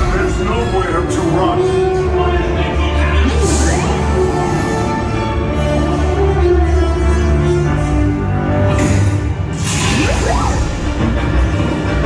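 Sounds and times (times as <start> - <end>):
dramatic orchestral score: 0.0 - 12.0.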